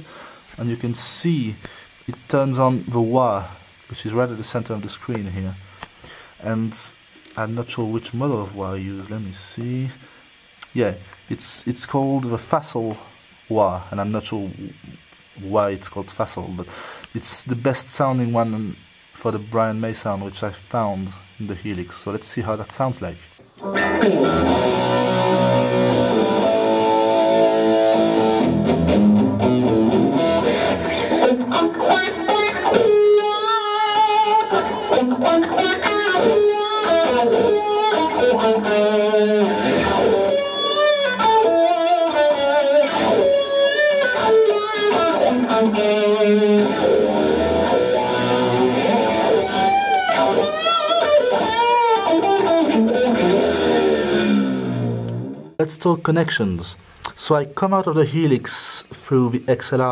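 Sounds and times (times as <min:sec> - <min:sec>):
electric guitar with wah effect: 0:00.0 - 0:08.0, 0:14.5 - 0:15.5, 0:23.3 - 0:55.6.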